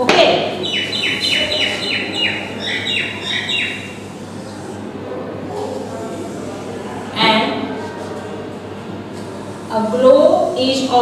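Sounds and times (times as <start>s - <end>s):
small bird chirping: 0.6s - 4.0s.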